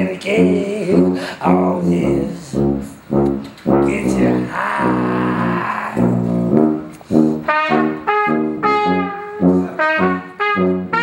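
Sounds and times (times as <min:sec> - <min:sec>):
low brass notes: 0:00.3 - 0:11.0.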